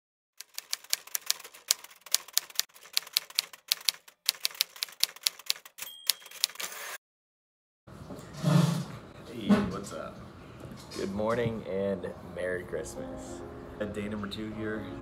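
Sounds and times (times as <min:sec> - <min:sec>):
typewriter key strikes: 0:00.4 - 0:06.7
typewriter carriage bell: 0:00.4 - 0:07.0.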